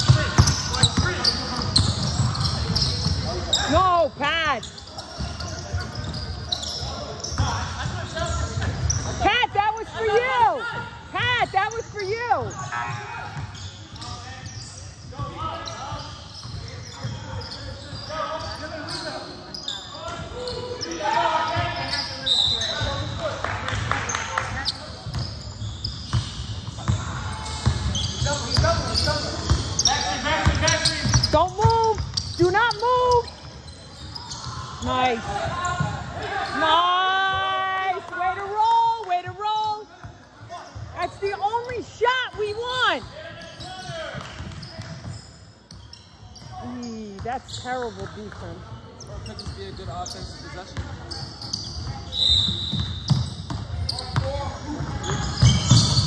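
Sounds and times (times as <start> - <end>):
basketball dribbling: 0.0 - 3.9
sneakers squeaking: 0.0 - 56.0.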